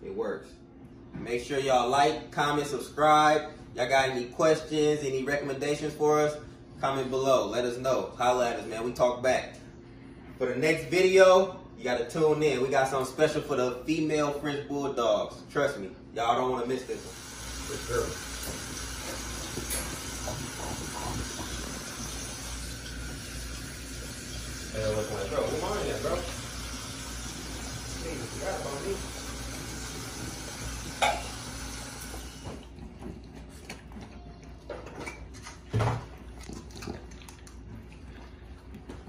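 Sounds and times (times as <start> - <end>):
dog chewing and smacking: 32.6 - 39.0.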